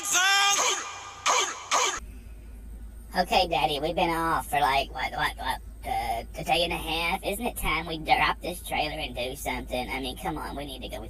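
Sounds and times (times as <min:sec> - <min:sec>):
low hum inside truck cab: 0:00.0 - 0:11.0.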